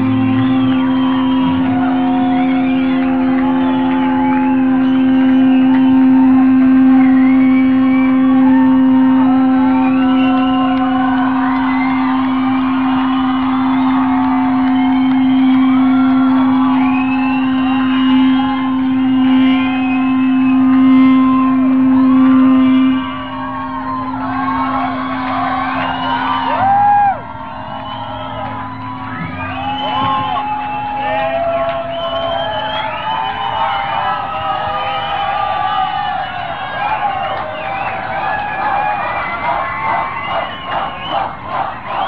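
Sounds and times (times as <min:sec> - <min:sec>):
electric guitar drone: 0:00.0 - 0:40.3
crowd noise: 0:00.0 - 0:42.0
squealing guitar feedback: 0:00.0 - 0:42.0.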